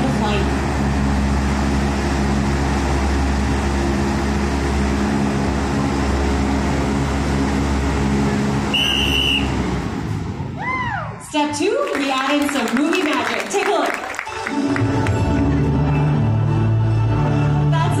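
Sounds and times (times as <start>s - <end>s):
low motor hum: 0.0s - 11.3s
fan blowing wind: 0.0s - 18.0s
high whistle-like tone: 8.7s - 9.6s.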